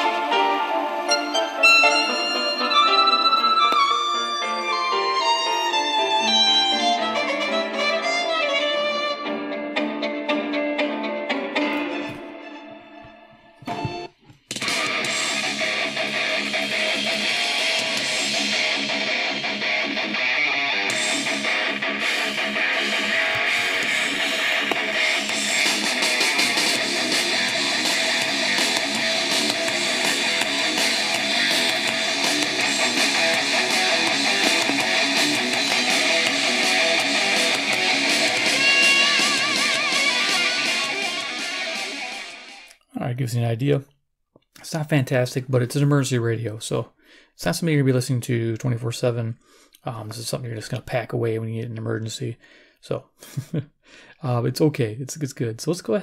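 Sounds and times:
song with electric guitar: 0.0s - 42.7s
music through small radio speaker: 11.6s - 42.7s.

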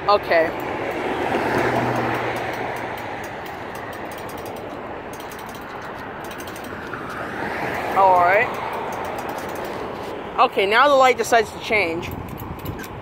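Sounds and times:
road vehicle passing: 0.0s - 13.0s.

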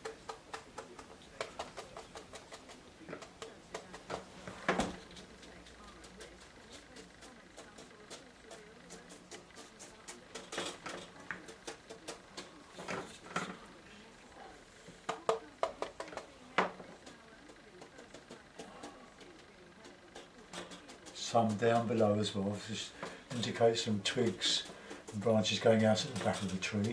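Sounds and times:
paintbrush tapping on paper: 0.0s - 12.7s, 15.0s - 26.9s.

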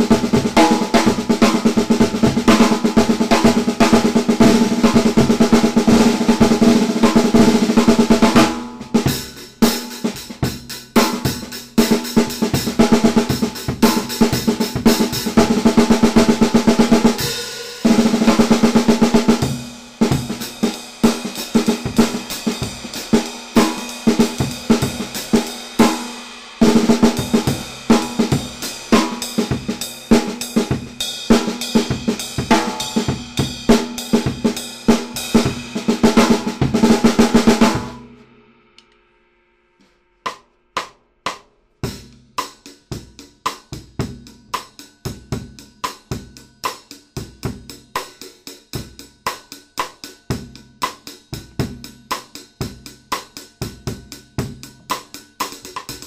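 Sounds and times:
snare drum strokes and rolls: 0.0s - 38.1s.

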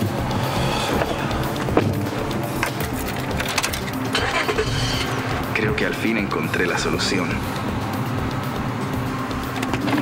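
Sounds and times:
car starter cranking: 3.4s - 5.1s.

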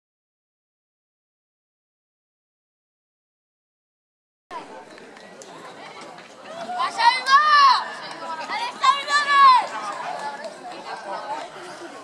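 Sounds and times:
indistinct chatter of voices: 4.5s - 12.0s.

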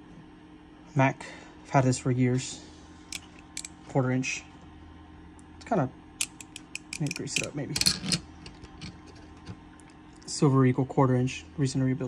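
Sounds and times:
hand ratchet ticking: 6.2s - 8.2s
sharp metal clack: 6.2s - 8.2s.

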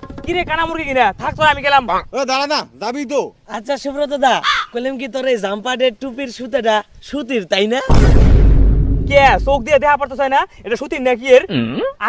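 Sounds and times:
young men arguing: 0.3s - 8.1s.

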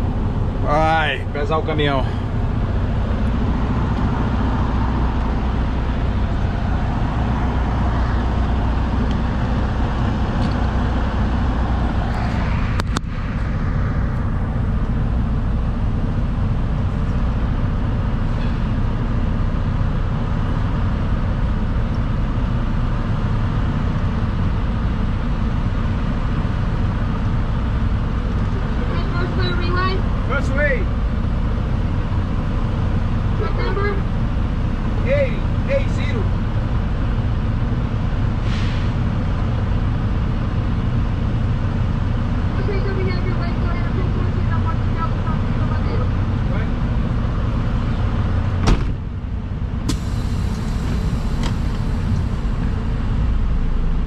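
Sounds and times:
diesel truck engine idling: 0.0s - 54.0s.

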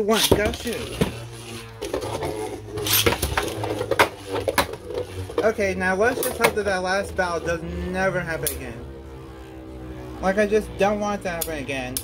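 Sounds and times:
spinning tops whirring: 0.0s - 12.0s.

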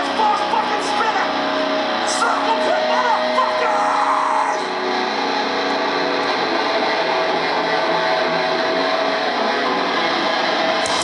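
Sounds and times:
metal band playing live: 0.0s - 11.0s.

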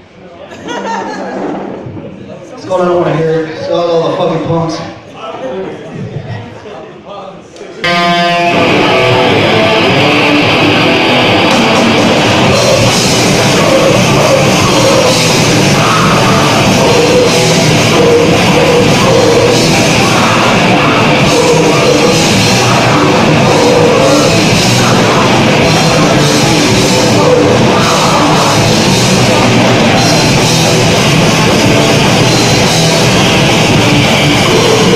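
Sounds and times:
grindcore band playing live: 7.8s - 34.9s.

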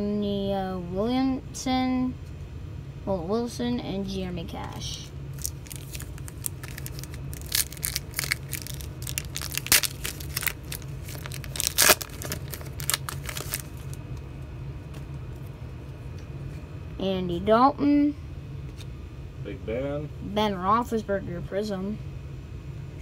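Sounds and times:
steady low hum: 0.0s - 23.0s
foil wrapper tearing and crinkling: 5.3s - 14.0s.

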